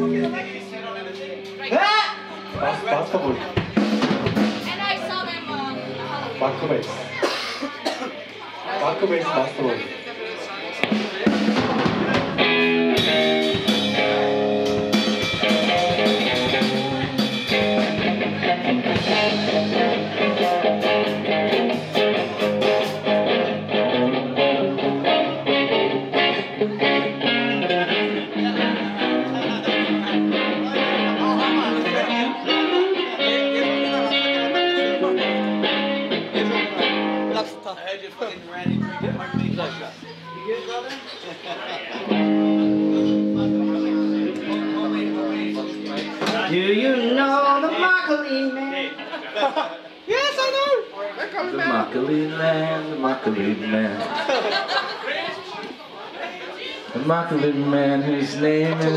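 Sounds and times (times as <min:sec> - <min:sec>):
drum kit: 0:03.4 - 0:06.0, 0:10.8 - 0:26.4
electric guitar through amp: 0:10.8 - 0:37.5, 0:38.6 - 0:40.5, 0:42.0 - 0:48.6.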